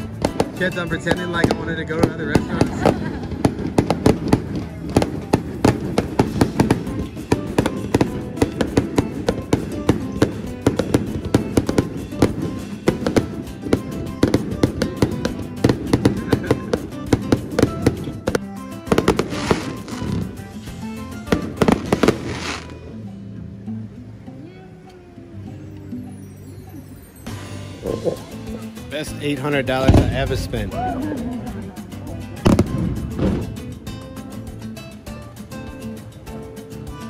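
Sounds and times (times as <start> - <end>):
fireworks bangs and crackles: 0.0 - 22.7, 29.0 - 33.8
music: 0.0 - 37.0.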